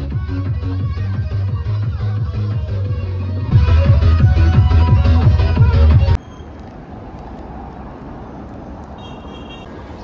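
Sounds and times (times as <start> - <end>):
low rumble of road noise: 0.1 - 10.0
cars driving past: 6.1 - 10.0.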